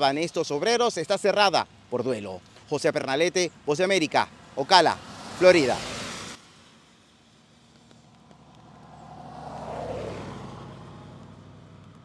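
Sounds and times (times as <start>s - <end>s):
road vehicle passing by: 4.3s - 12.0s.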